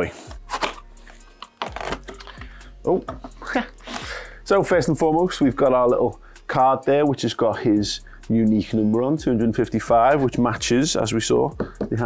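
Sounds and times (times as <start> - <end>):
packing tape scratching: 0.4 - 2.4
tape ripping off cardboard: 0.5 - 0.8, 1.4 - 2.2.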